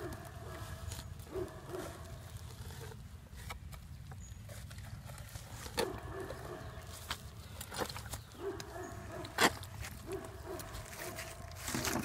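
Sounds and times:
spade blade crunching into soil: 9.1 - 10.0
spade scraping in soil: 9.1 - 12.0.

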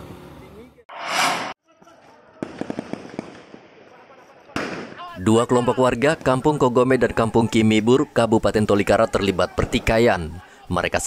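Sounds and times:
short rush of noise: 0.9 - 1.6
whoosh: 0.9 - 1.6
distant gunfire cracks: 2.4 - 3.5, 4.6 - 5.0.

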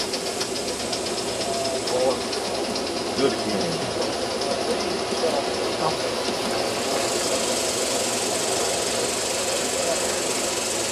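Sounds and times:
model steam train chuffing: 0.0 - 10.9.

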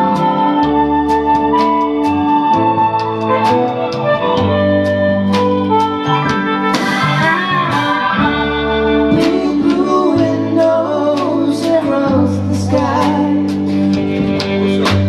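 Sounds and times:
live band playing slow song: 0.0 - 15.0.

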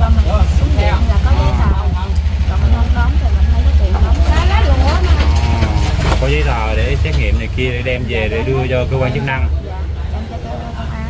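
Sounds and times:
woman talking: 0.0 - 6.0, 9.1 - 11.0
pulsing low rumble: 0.0 - 11.0.

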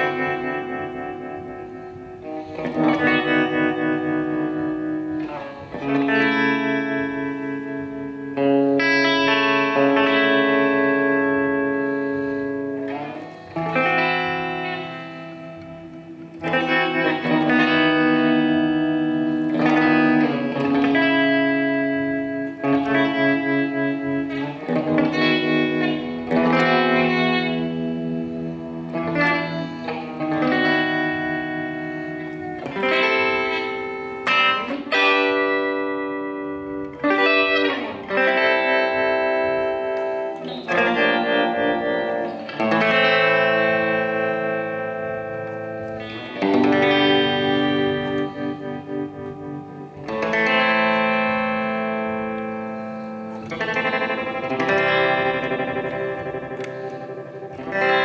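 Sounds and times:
electric guitar chords with tremolo: 0.0 - 58.0.

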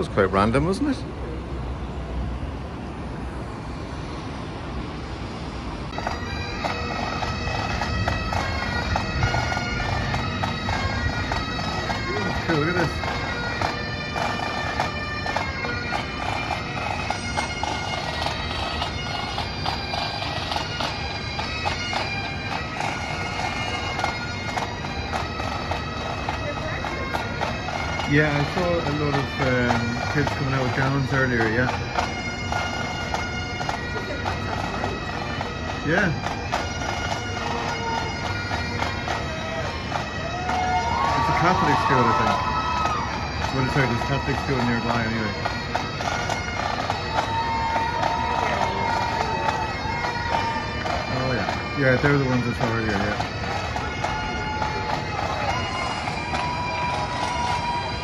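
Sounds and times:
low city hum: 0.0 - 58.0
pipe band bagpipes playing: 4.9 - 58.0.

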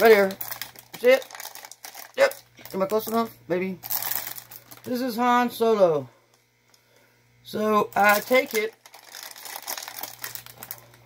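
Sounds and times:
plastic wrapping crinkling: 0.0 - 5.2, 7.9 - 11.0.

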